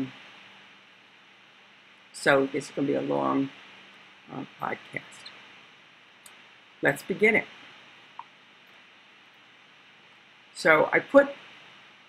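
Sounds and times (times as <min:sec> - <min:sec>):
faint steady hiss: 0:00.0 - 0:12.0
person saying um: 0:04.3 - 0:05.3.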